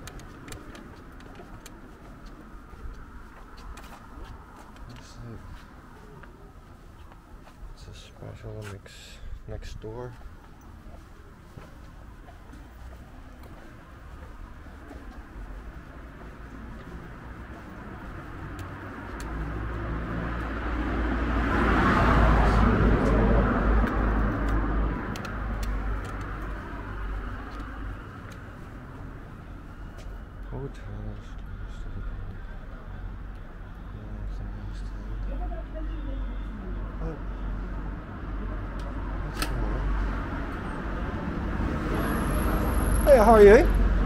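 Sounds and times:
street traffic rumble: 0.0s - 44.0s
car passing: 8.9s - 44.0s.

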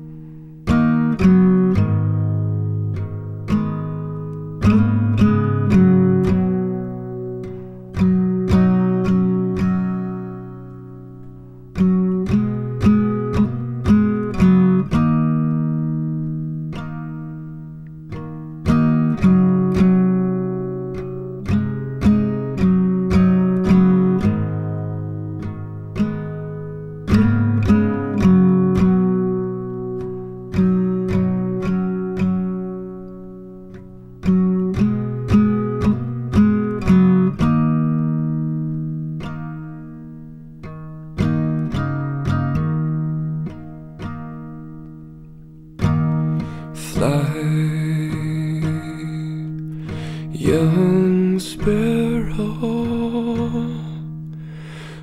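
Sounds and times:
acoustic guitar picked slowly: 0.0s - 55.0s.

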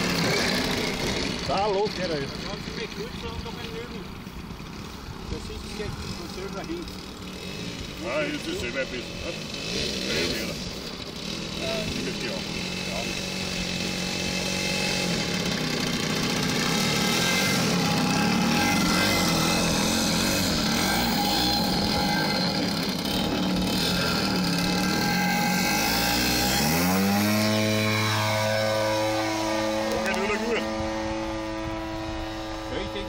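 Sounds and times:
model plane engine at high throttle: 0.0s - 33.0s.

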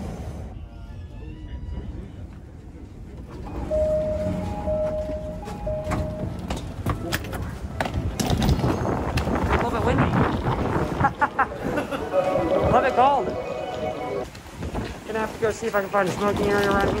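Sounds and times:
electronic chime tones: 3.5s - 6.5s.

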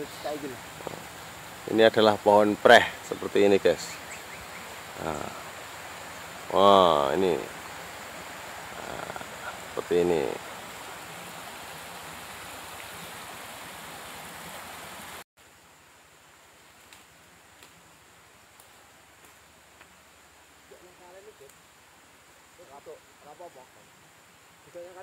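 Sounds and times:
steady rushing outdoor hiss: 0.0s - 25.0s.

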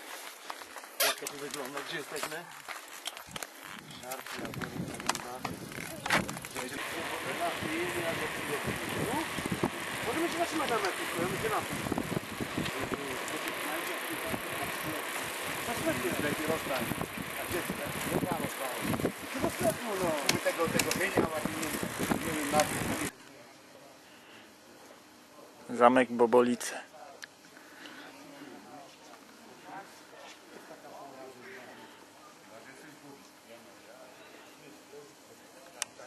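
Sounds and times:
bicycle rolling on paved road: 0.0s - 23.1s.

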